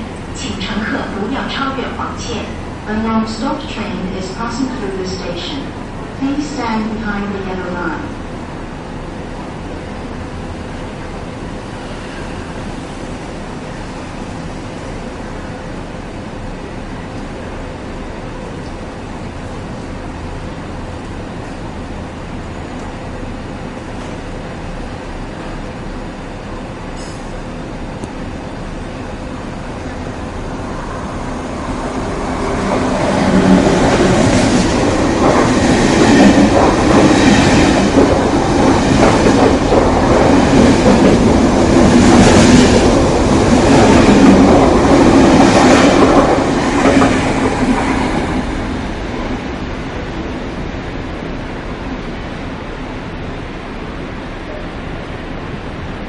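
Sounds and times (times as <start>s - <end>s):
train passing at speed: 0.0s - 56.0s.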